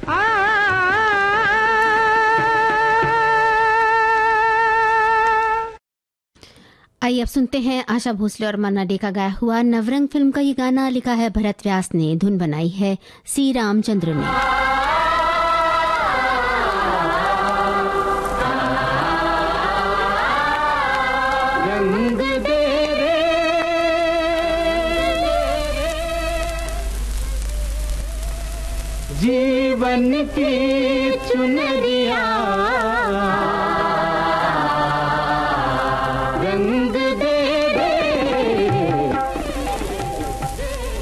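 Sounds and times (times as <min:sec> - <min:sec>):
voices singing in chorus: 0:14.1 - 0:26.8, 0:29.1 - 0:40.6
old film song on radio: 0:14.2 - 0:41.0.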